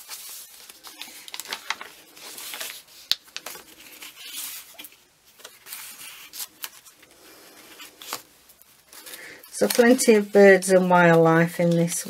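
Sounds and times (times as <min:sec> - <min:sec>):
paper rustling and sliding: 0:00.0 - 0:10.5.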